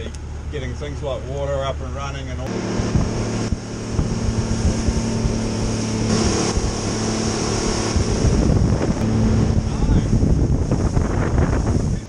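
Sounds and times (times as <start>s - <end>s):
outboard motor running: 0.0s - 12.0s
water rushing from hull: 0.0s - 12.0s
wind buffeting microphone: 2.5s - 12.0s.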